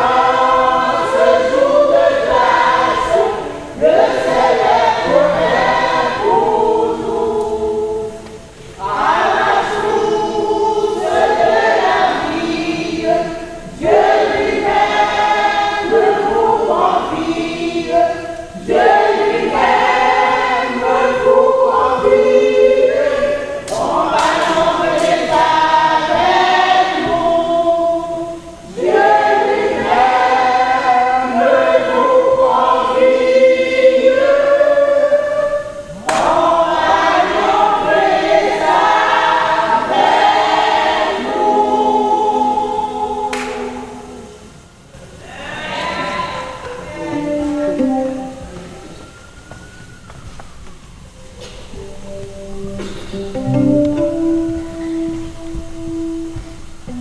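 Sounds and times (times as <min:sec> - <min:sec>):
women's choir singing a hymn: 0:00.0 - 0:50.1.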